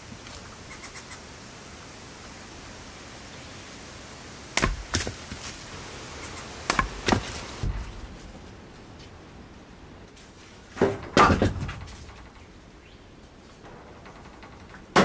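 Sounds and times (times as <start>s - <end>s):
maul splitting wood cracks: 4.6s - 5.5s.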